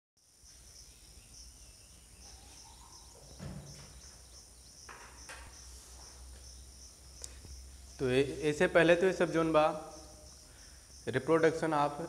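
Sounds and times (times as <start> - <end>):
insects chirping: 0.2 - 12.0
brief thump: 3.4 - 4.0.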